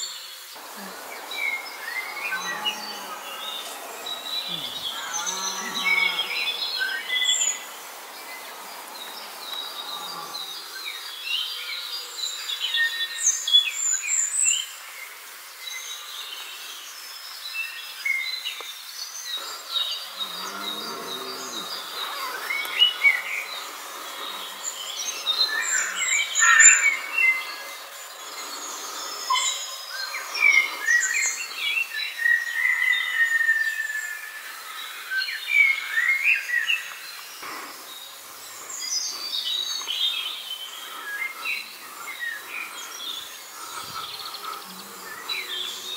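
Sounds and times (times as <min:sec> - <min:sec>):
songbirds chirping and trilling: 0:00.0 - 0:45.9.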